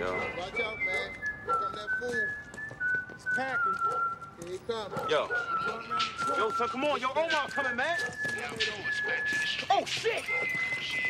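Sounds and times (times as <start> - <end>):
man whistling a slow tune: 0.0 - 11.0.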